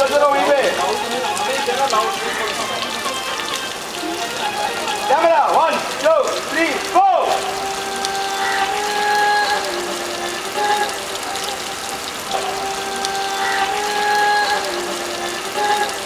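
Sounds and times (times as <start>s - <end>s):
held melodic tone: 0.0s - 16.0s
hose water splashing hiss: 0.0s - 16.0s.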